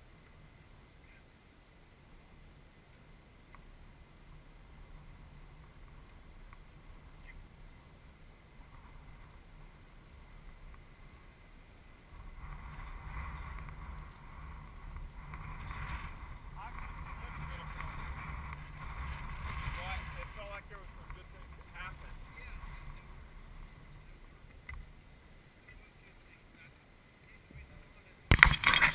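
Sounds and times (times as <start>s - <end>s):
wind buffeting microphone: 12.0s - 25.0s.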